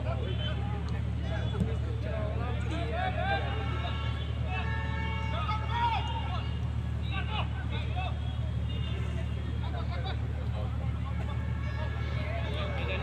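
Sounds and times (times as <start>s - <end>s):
voices calling out: 0.0s - 13.0s.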